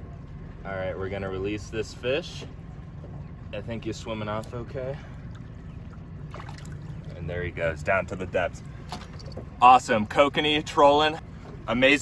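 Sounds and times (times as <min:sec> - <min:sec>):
boat motor humming: 0:00.0 - 0:12.0
light water sounds: 0:00.0 - 0:12.0.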